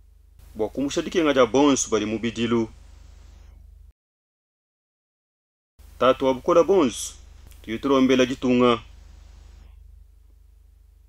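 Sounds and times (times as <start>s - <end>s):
electrical hum with buzz: 0.0s - 3.9s, 5.8s - 11.0s.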